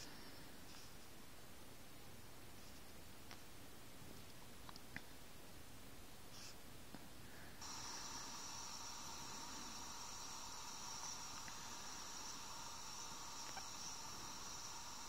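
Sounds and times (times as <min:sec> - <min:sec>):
faint hiss from phone speaker: 0:00.0 - 0:04.3, 0:06.2 - 0:15.0.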